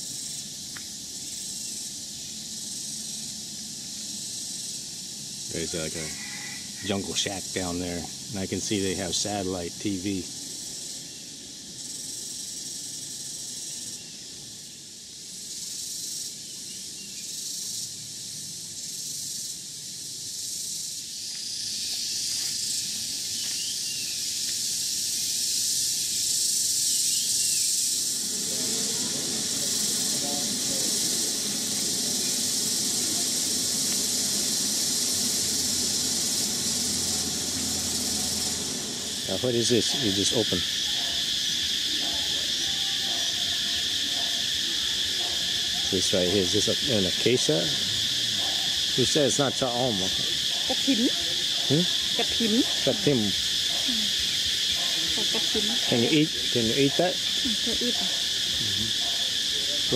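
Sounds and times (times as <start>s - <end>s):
insect chorus shrill drone: 0.0s - 59.9s.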